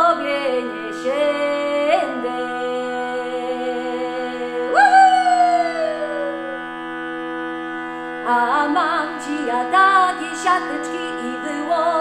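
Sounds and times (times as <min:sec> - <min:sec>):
woman folk singing: 0:00.0 - 0:06.6, 0:08.2 - 0:12.0
shruti box drone: 0:00.0 - 0:12.0
woman whooping: 0:04.7 - 0:06.6.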